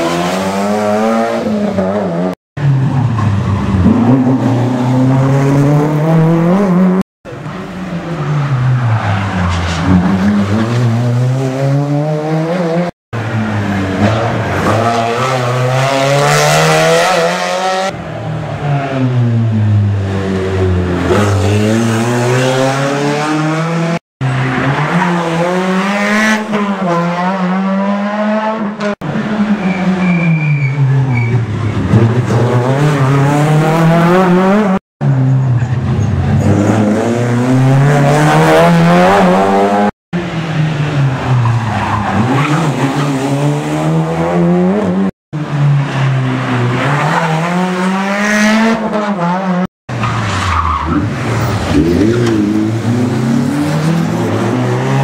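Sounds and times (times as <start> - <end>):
rally car engines accelerating: 0.0 - 55.0.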